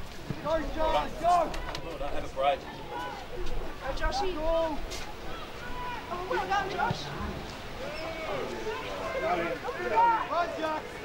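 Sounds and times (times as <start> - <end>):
voices shouting: 0.3 - 11.0.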